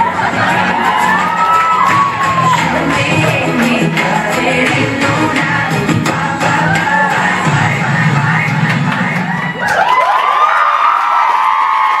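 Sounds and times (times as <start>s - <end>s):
audience cheering and whooping: 0.0s - 3.3s, 6.4s - 7.9s, 9.0s - 12.0s
pop music with steady beat: 0.0s - 9.8s.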